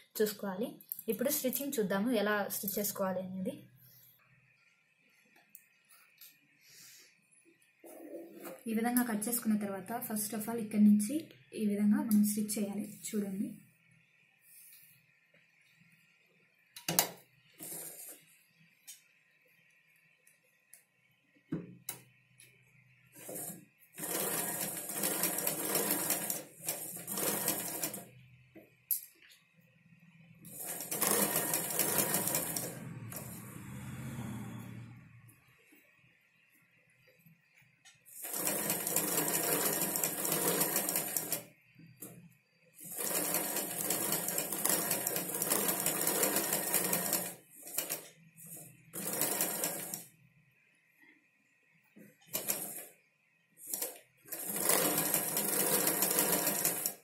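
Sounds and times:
sewing machine stitching: 0:17.6 - 0:18.2, 0:23.2 - 0:28.1, 0:30.5 - 0:35.0, 0:38.1 - 0:42.2, 0:42.8 - 0:50.1, 0:52.2 - 0:52.9, 0:53.6 - 0:57.0.

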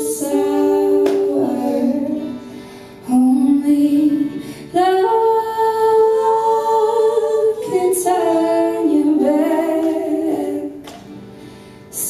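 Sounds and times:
woman singing long held notes: 0:00.0 - 0:10.8
faint folk instruments: 0:00.0 - 0:12.0.

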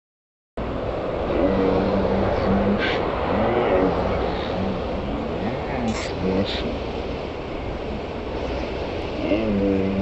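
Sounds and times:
man talking indistinctly: 0:01.3 - 0:06.8, 0:09.2 - 0:10.0.

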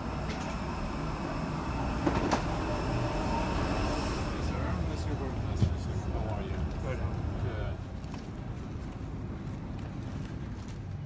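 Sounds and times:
low mechanical rumble: 0:00.0 - 0:11.0.

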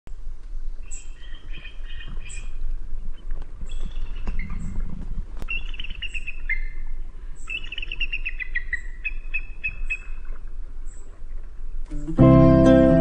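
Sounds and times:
steady low rumble: 0:00.1 - 0:07.5
songbird chirping: 0:00.7 - 0:13.0.

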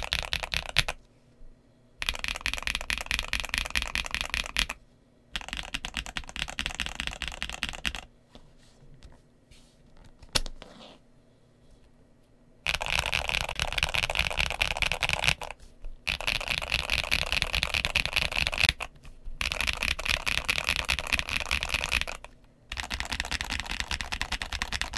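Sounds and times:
fast mechanical keyboard typing: 0:00.0 - 0:01.0, 0:02.0 - 0:04.8, 0:05.4 - 0:08.1, 0:12.7 - 0:24.9.

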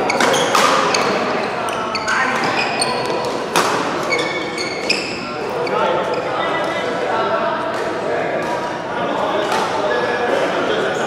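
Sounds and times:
racket hitting shuttlecock: 0:00.0 - 0:01.3, 0:02.4 - 0:04.0
shoes squeaking on court: 0:00.0 - 0:07.0
voices in echoing hall: 0:00.0 - 0:11.0.

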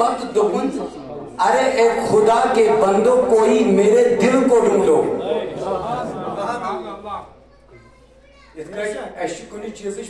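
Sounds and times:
man speaking over loudspeaker: 0:00.0 - 0:07.3.

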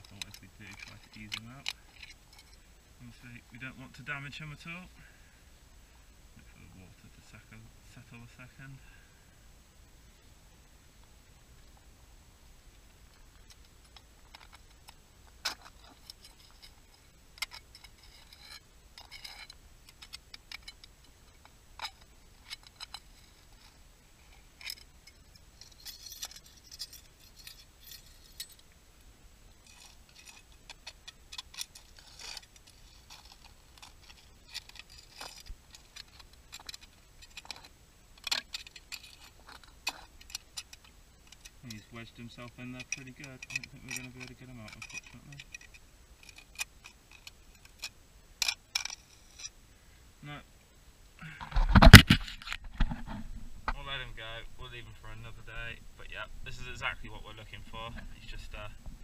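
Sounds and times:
faint clicking and crackling: 0:00.0 - 0:05.2, 0:12.7 - 0:49.6.

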